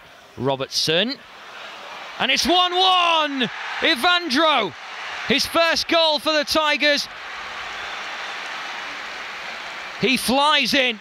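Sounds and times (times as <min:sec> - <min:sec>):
stadium crowd cheering: 0:01.2 - 0:11.0.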